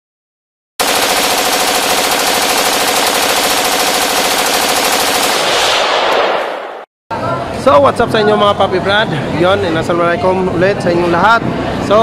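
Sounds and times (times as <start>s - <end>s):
loud rapid rattling: 0.8s - 5.5s.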